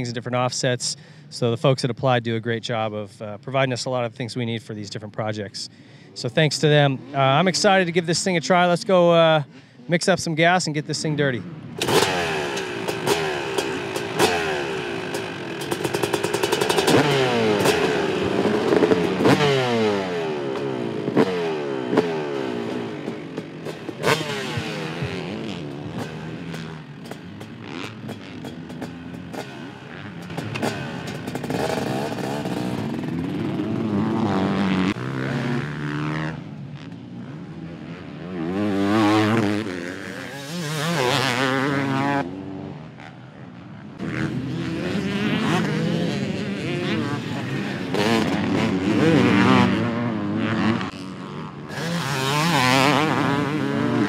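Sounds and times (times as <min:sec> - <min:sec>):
motorcycle engine revving: 0:06.4 - 0:09.0, 0:11.3 - 0:54.0.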